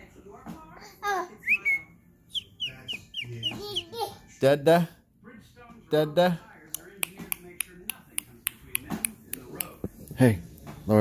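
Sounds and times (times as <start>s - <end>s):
fingers snapping: 6.7s - 9.8s.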